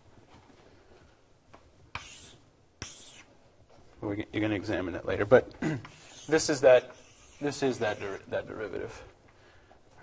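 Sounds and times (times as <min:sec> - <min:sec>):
marker writing on a board: 0:01.9 - 0:03.3, 0:05.8 - 0:08.2.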